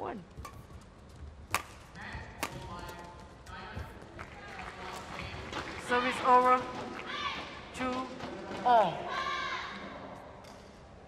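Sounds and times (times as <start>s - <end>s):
rackets striking shuttlecock: 1.5s - 3.0s.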